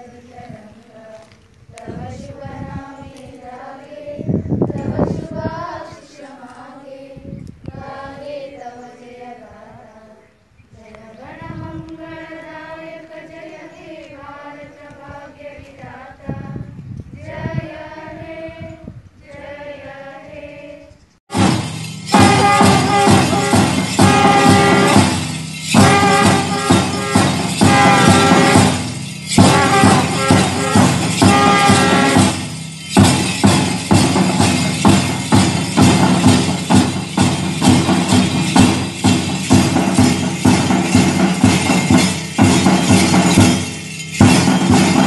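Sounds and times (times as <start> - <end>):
cymbal crash: 21.3 - 45.0
drum beats: 21.3 - 45.0
bugles sounding: 22.1 - 39.1.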